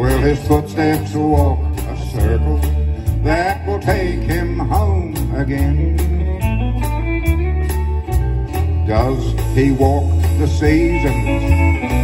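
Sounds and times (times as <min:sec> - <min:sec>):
drums keeping a steady beat: 0:00.0 - 0:12.0
electric bass: 0:00.0 - 0:12.0
electric guitar fill: 0:00.0 - 0:12.0
strummed acoustic guitar: 0:00.0 - 0:12.0.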